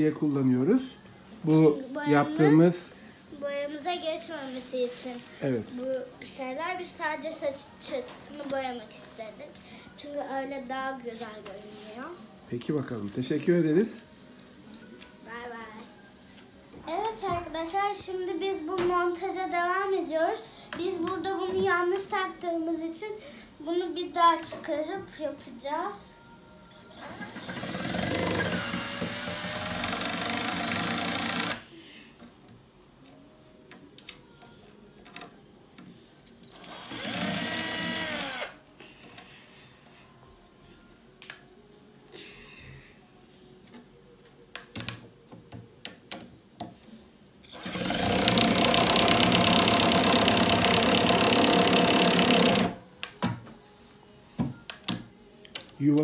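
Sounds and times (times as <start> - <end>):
cordless drill running: 26.9 - 31.6, 36.5 - 38.6, 47.5 - 52.8.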